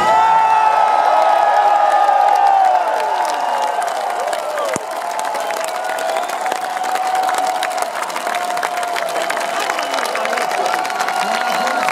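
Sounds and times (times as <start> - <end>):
crowd cheering and clapping: 0.0 - 11.9
sharp close hand claps: 2.2 - 11.9.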